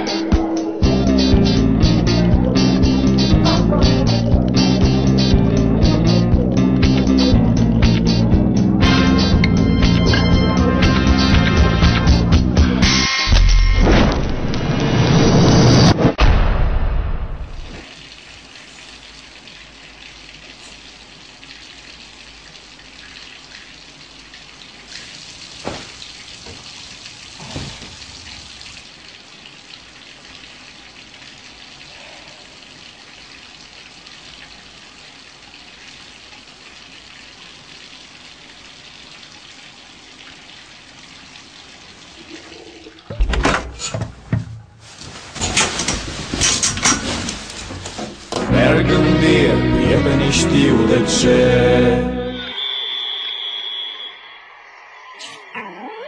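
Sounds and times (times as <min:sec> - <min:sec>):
running water hiss: 0:17.8 - 0:42.9
music with rushing swell: 0:48.5 - 0:55.2.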